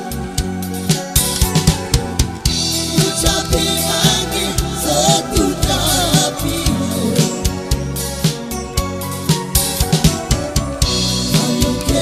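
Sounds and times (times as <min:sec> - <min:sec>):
band playing: 0:00.0 - 0:12.0.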